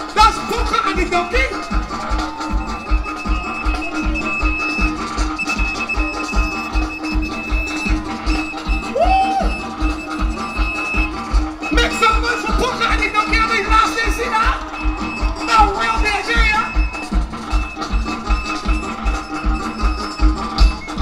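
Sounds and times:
held keyboard notes: 0.0 - 21.0
live band playing: 0.0 - 21.0.

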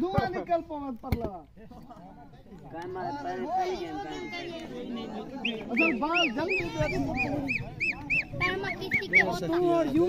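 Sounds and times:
voices: 0.0 - 10.0
bird calling high notes: 5.3 - 9.4.

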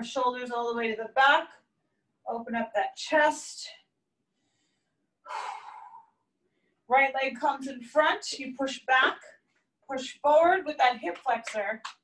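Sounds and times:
woman breathing out: 4.4 - 6.2.

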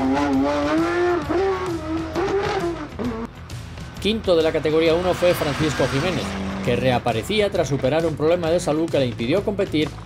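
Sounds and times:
race car engine revving: 0.0 - 9.2.

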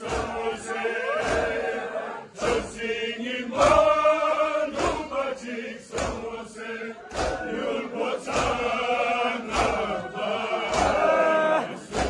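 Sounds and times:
unison chest-beating strikes: 0.0 - 1.8, 3.5 - 4.1, 4.7 - 5.2, 5.9 - 7.6, 8.2 - 8.8, 9.4 - 10.0, 10.6 - 11.1, 11.7 - 12.0
men chanting: 0.0 - 12.0.

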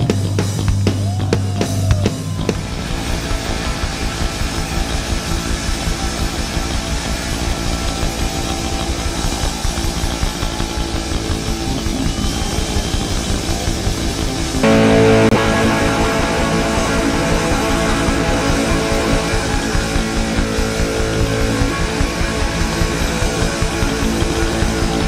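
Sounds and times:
punk rock music: 0.0 - 2.9, 14.5 - 25.0.

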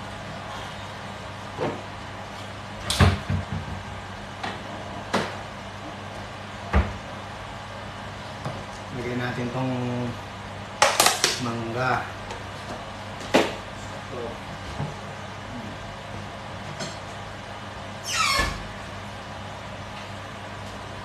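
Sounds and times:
steady low hum: 0.0 - 21.0
falling squeak: 18.0 - 18.6.

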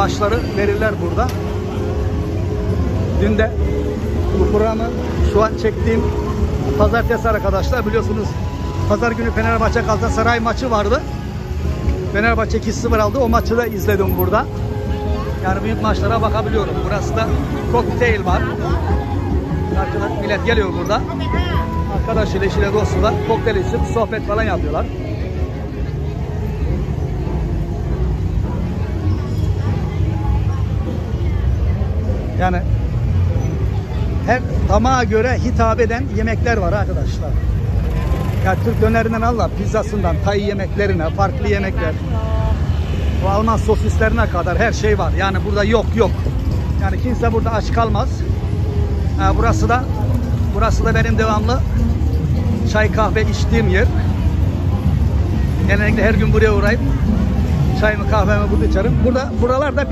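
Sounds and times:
motorbike and car engines rumbling: 0.0 - 59.9
people chattering: 0.0 - 59.9.

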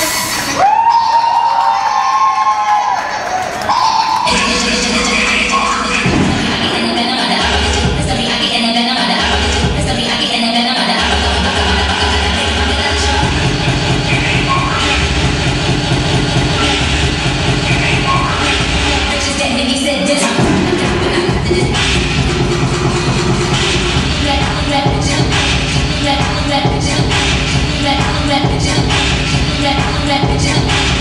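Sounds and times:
dance music with heavy bass: 0.0 - 1.0, 3.6 - 31.0.

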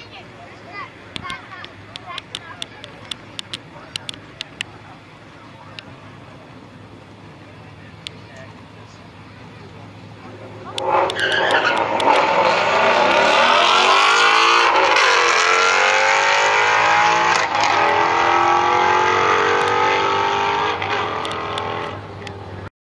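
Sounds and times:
car engine at full throttle: 0.2 - 22.7.

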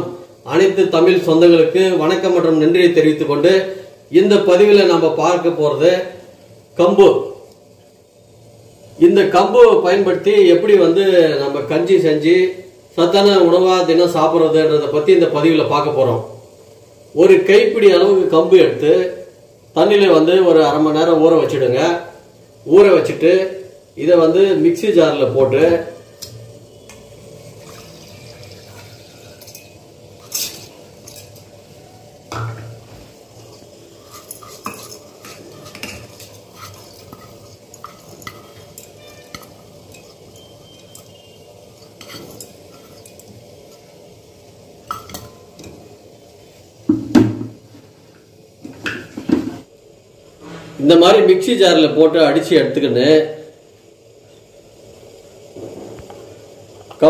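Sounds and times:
steady background hiss: 0.0 - 57.0
steel bowl and spoon clinking: 27.6 - 31.5, 34.0 - 44.0, 44.8 - 45.8.

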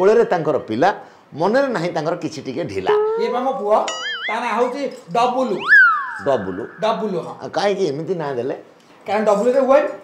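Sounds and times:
people in conversation: 1.2 - 10.0
thin high tone: 2.9 - 8.0.

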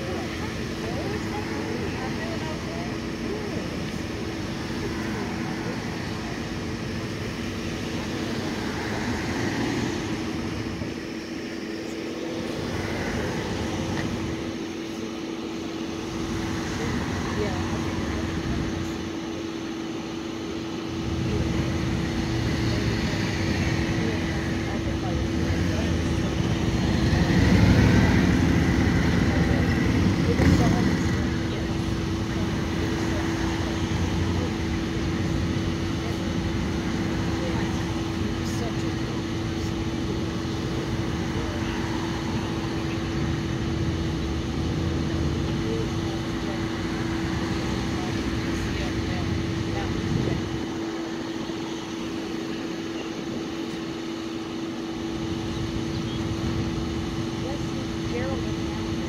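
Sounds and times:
cars driving past: 0.0 - 59.0.

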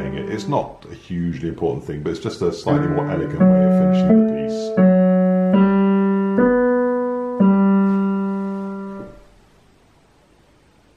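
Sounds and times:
digital piano notes: 0.0 - 0.8, 2.6 - 9.3.

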